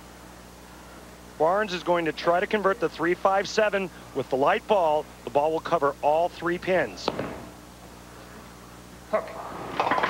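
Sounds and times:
bowling ball rolling: 9.4s - 10.0s.

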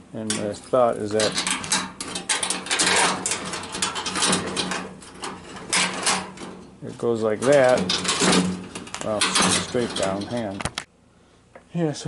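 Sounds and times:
wire rattling against sheet metal: 0.2s - 10.9s.

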